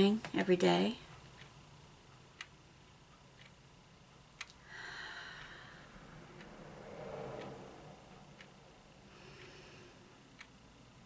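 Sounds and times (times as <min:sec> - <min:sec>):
clock ticking: 0:00.2 - 0:11.0
person breathing slowly: 0:04.6 - 0:10.5.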